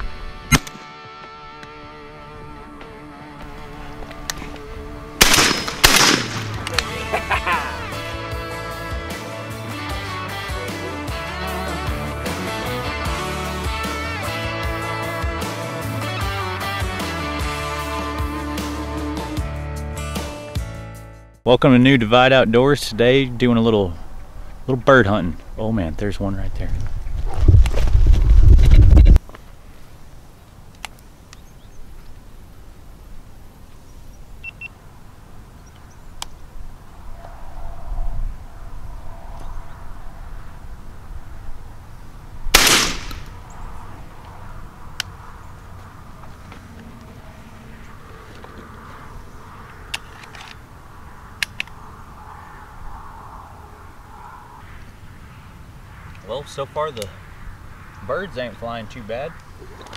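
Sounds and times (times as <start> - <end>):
shotgun shot with echo: 5.2 - 6.8, 42.5 - 43.4
microphone handling rumble: 26.4 - 29.2.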